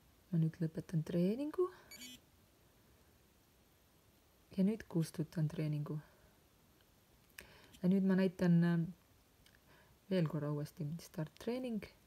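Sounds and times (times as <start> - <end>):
sports watch beep: 1.9 - 2.2.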